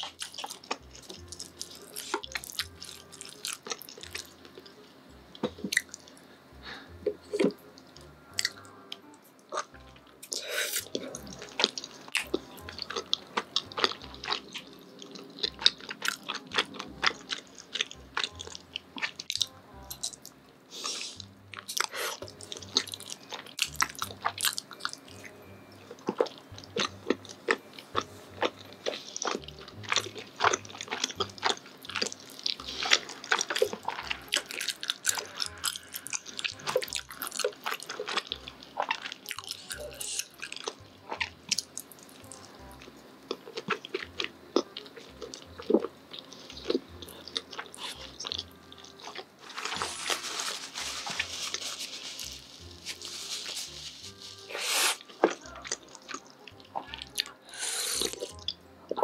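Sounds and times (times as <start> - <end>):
close chewing and mouth clicks: 0.0 - 6.2, 8.4 - 59.0.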